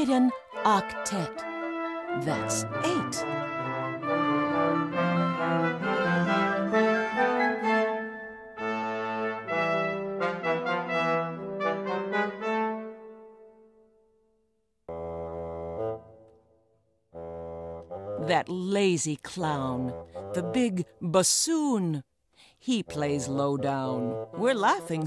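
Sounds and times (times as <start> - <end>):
chamber ensemble playing: 0.0 - 13.1, 19.7 - 20.9, 22.7 - 25.0
low held notes: 2.1 - 6.4.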